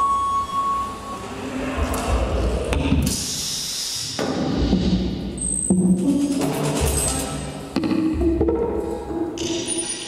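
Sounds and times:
experimental noisy music: 0:01.0 - 0:10.0
deep rumble: 0:01.2 - 0:03.1.

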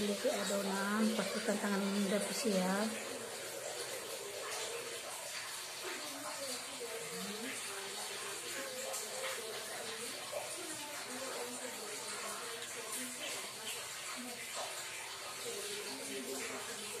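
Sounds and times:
faint background voices: 0:00.0 - 0:17.0.

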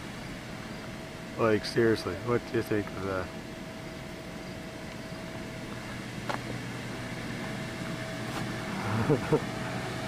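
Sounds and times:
foam machine blower humming: 0:00.0 - 0:10.0
thin steady whine: 0:00.0 - 0:10.0.

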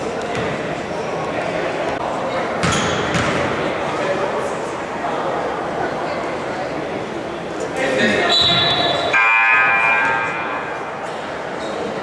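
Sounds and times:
court noise: 0:00.0 - 0:12.0
voices: 0:00.0 - 0:12.0.

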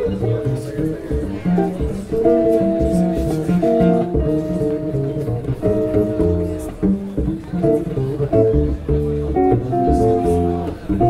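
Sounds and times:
guitar playing held chords: 0:00.0 - 0:11.0
plucked double bass: 0:00.0 - 0:11.0.

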